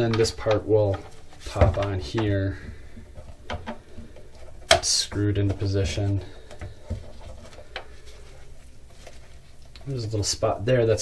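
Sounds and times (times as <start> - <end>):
gloved hands handling armor: 0.0 - 10.2
steady low hum: 0.0 - 11.0.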